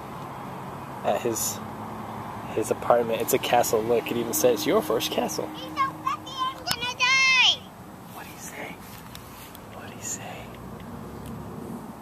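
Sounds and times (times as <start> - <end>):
person whispering: 8.1 - 8.8, 9.8 - 10.6.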